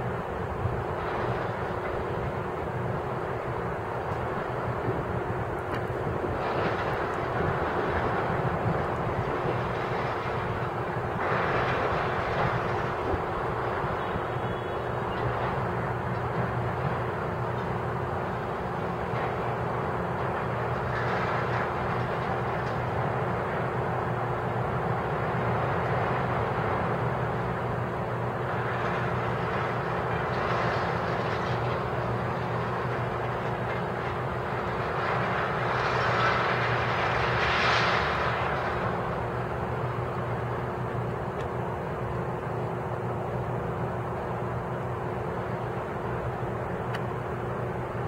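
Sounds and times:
diesel engine running: 0:00.0 - 0:48.0.

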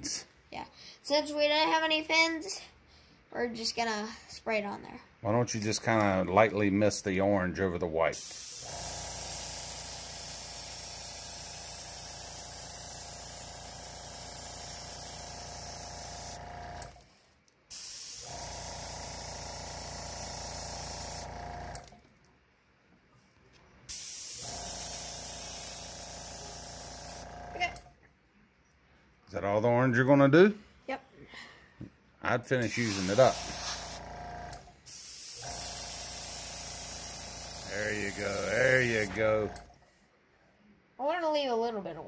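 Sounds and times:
airbrush spraying hiss: 0:08.2 - 0:16.4, 0:17.7 - 0:21.3, 0:23.9 - 0:27.3, 0:32.6 - 0:34.0, 0:34.8 - 0:39.2
airbrush compressor hum: 0:08.2 - 0:17.0, 0:17.7 - 0:21.9, 0:23.9 - 0:27.9, 0:32.6 - 0:39.8.

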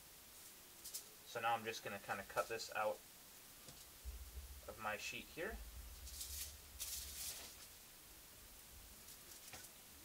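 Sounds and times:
aluminium foil crinkling: 0:00.8 - 0:01.1, 0:05.9 - 0:07.8, 0:09.0 - 0:09.8.

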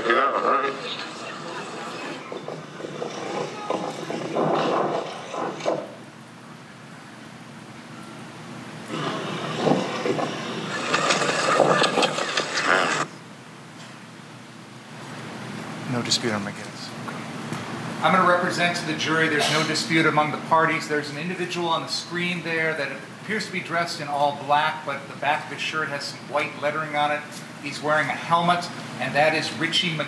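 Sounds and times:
street noise: 0:00.0 - 0:07.2, 0:08.9 - 0:13.2.

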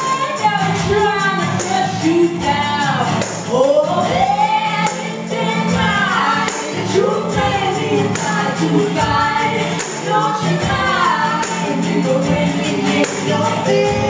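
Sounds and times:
tambourine: 0:00.0 - 0:14.0
voices singing in harmony: 0:00.0 - 0:14.0.

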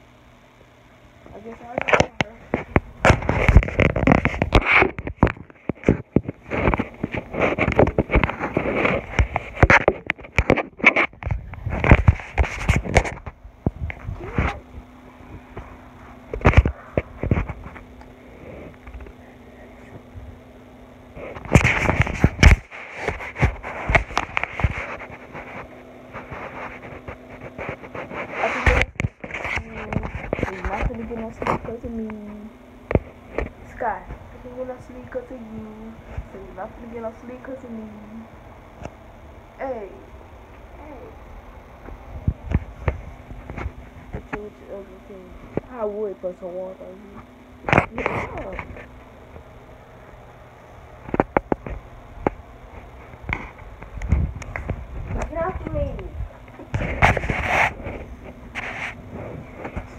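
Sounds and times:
faint low hum: 0:00.0 - 0:59.9
muffled indistinct voices: 0:26.2 - 0:38.3, 0:44.1 - 0:48.9.

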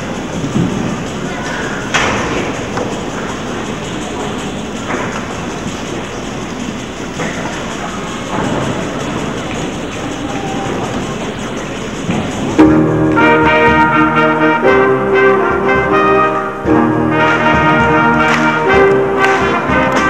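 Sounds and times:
crowd murmur and rustle: 0:00.0 - 0:20.0
concert band brass chord: 0:12.6 - 0:20.0.

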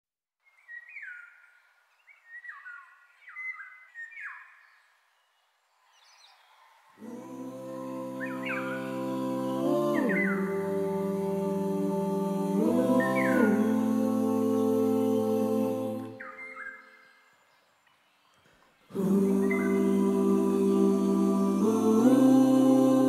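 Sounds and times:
whistled bird chirps: 0:00.4 - 0:06.7, 0:09.9 - 0:10.6, 0:16.1 - 0:18.5, 0:19.4 - 0:19.8
held music chords: 0:07.0 - 0:16.2, 0:19.0 - 0:23.0.

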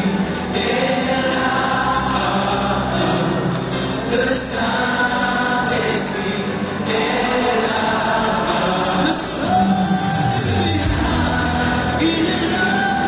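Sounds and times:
people singing gospel together: 0:00.0 - 0:13.0.

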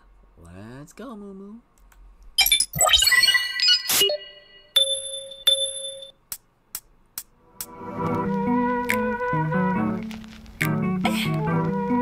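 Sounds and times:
electronic chiming jingle: 0:02.9 - 0:06.1.

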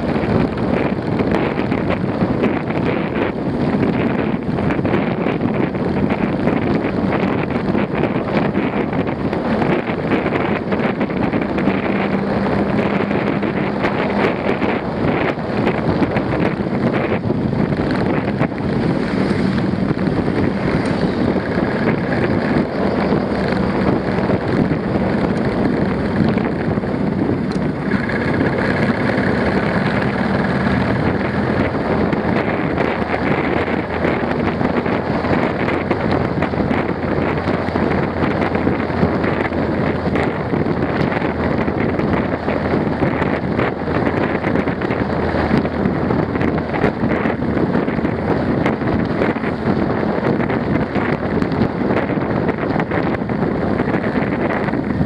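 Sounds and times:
low motorcycle engine hum: 0:00.0 - 0:55.0
wind rushing over microphone: 0:00.0 - 0:55.0.

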